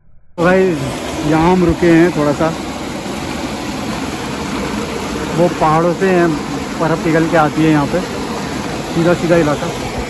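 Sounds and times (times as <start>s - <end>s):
stream rushing over boulders: 0.4s - 10.0s.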